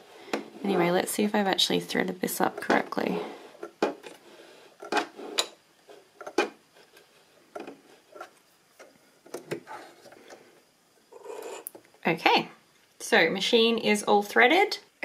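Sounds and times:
thread rubbing on metal plate: 0:11.1 - 0:11.7.

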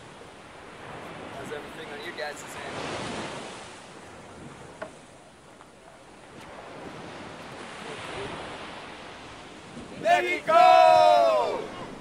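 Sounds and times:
wind rushing over microphone: 0:06.2 - 0:12.0.

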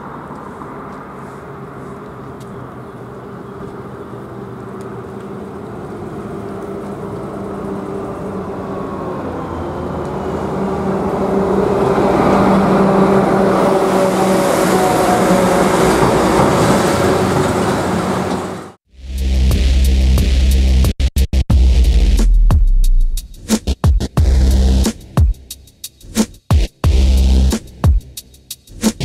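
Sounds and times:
motor vehicle engine running: 0:00.0 - 0:18.8.

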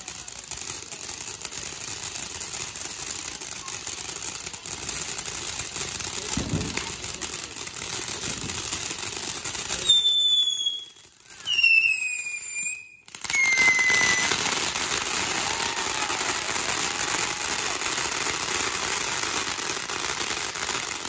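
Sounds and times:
firework hissing crackle: 0:00.0 - 0:21.0
firework whistles sliding down: 0:09.7 - 0:17.5.

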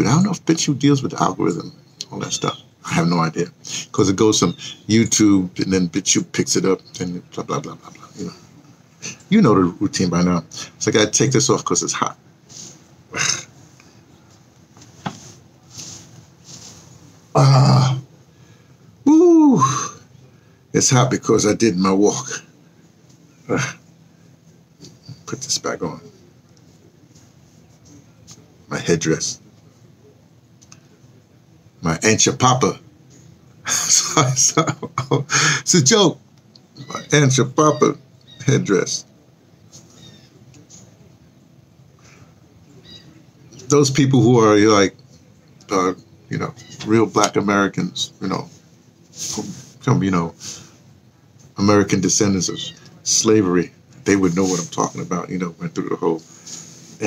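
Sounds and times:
cloth rustling: 0:14.3 - 0:17.3.

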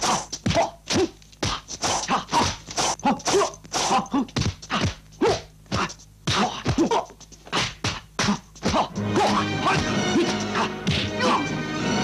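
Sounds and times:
fight scene music: 0:05.7 - 0:12.0
punch and block smacks: 0:09.7 - 0:11.2.

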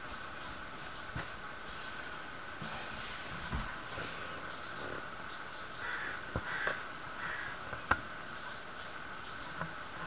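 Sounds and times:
crow cawing: 0:05.8 - 0:07.6.

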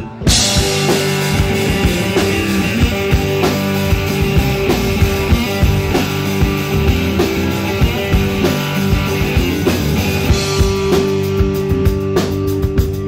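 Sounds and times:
bass guitar: 0:00.0 - 0:13.0
electric guitar: 0:00.0 - 0:13.0
drum kit beat: 0:00.3 - 0:13.0.

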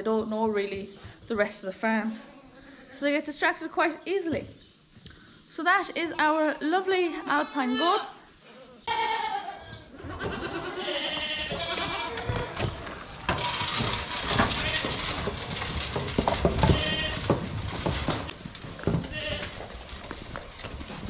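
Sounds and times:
goat kids bleating: 0:07.0 - 0:12.8, 0:16.6 - 0:17.2, 0:19.0 - 0:19.6
knocks and rattles on metal barrier: 0:12.6 - 0:19.4.

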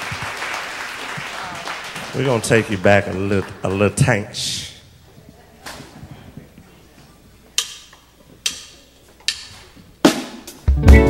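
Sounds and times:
drumsticks clicked together: 0:07.6 - 0:09.5.

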